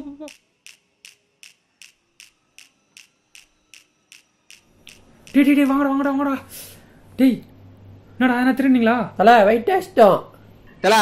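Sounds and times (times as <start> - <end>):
sharp light ticking: 0.0 - 5.9
faint steady hum: 0.0 - 11.0.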